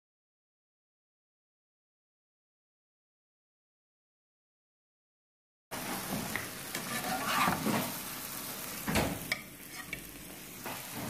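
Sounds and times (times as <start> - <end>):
eggs sizzling in a pan: 5.7 - 11.0
utensil knocking and scraping pan: 6.0 - 8.0.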